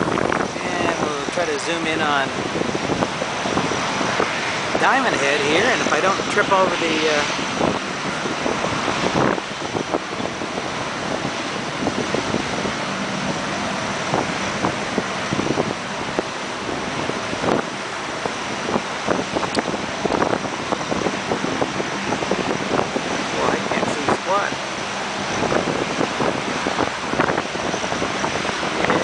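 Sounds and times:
ocean surf breaking: 0.0 - 29.0
wind buffeting microphone: 0.0 - 29.0.

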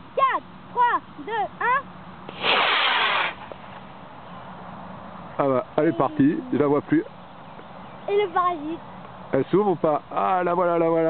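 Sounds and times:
rocket motor rushing hiss: 2.3 - 3.8.

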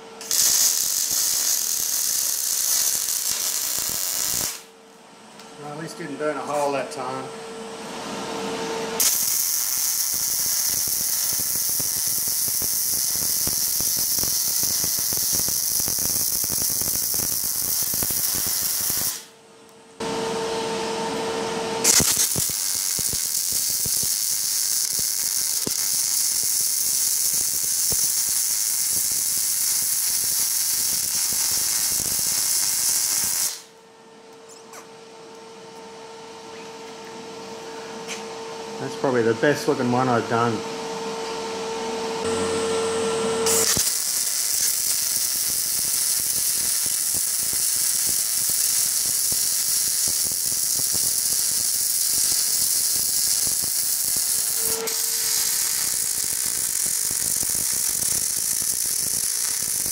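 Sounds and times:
welding arc crackle and hiss: 0.0 - 4.7, 9.0 - 19.3, 21.8 - 33.7, 43.5 - 59.9.

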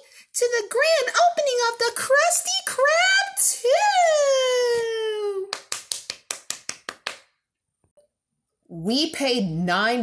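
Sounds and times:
sharp hand claps: 5.5 - 7.4.

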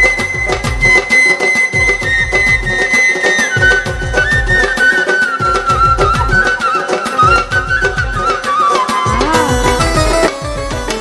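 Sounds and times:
dhol drum fast rhythm: 0.0 - 11.0
high held melody note: 9.0 - 11.0.

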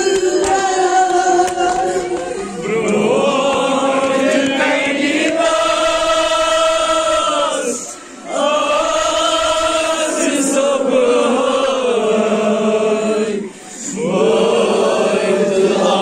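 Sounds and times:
men chanting a lament: 0.0 - 16.0.

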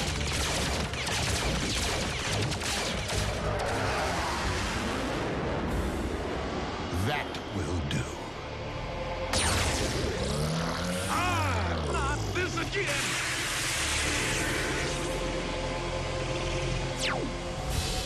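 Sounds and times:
background music: 0.0 - 18.0
steeply falling whine: 12.7 - 18.0.

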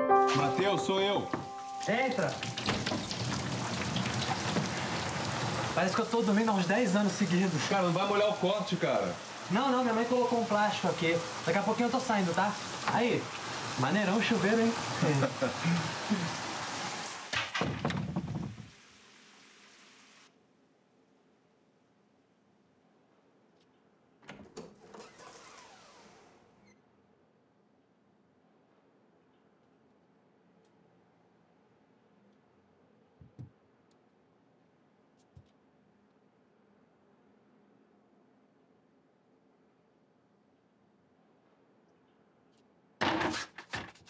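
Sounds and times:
shower water spray hissing: 1.6 - 17.3.

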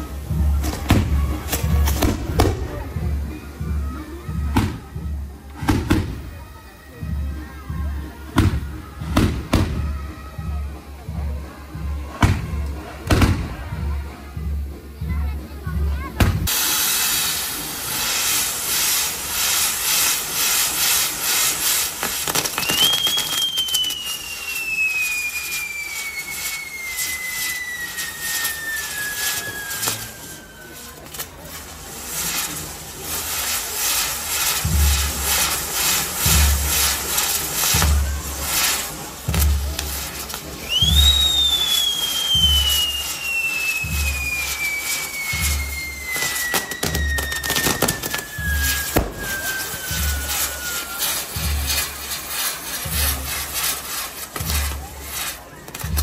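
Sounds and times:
falling firework whistles: 0.0 - 7.4, 8.2 - 10.8, 12.0 - 13.7, 16.2 - 56.0
fireworks crackling and hissing: 0.0 - 56.0.

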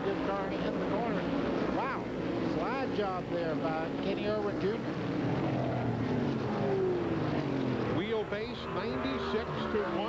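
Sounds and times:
race car engines at speed: 0.0 - 10.0.

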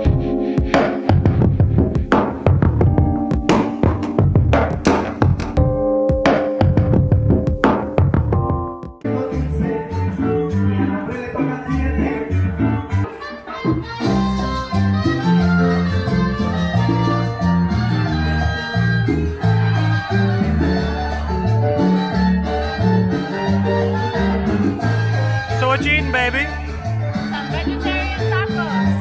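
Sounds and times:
salsa music: 0.0 - 29.0.

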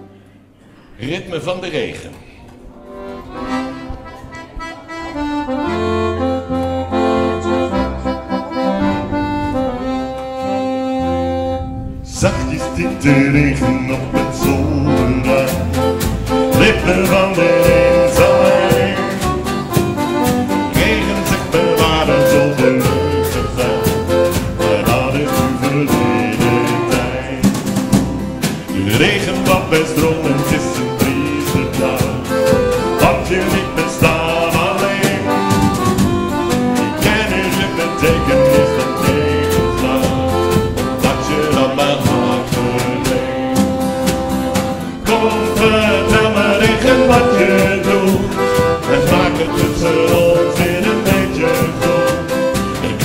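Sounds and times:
acoustic guitar: 2.3 - 53.0
accordion: 2.6 - 53.0
person singing: 12.0 - 19.8, 20.6 - 27.9, 28.5 - 35.8, 36.8 - 43.8, 45.0 - 53.0
percussion beat: 12.2 - 53.0.

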